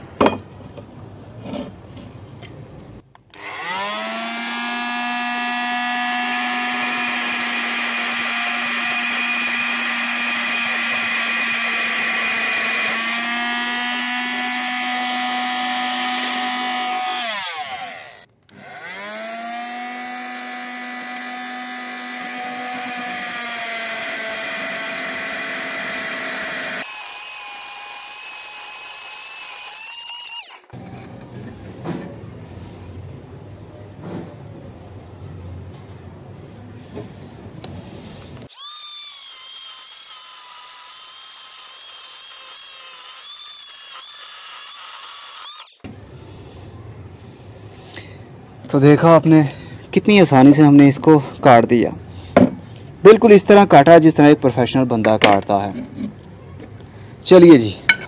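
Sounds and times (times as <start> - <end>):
oscillating tool cutting pipe: 3.3 - 30.8, 38.5 - 45.9.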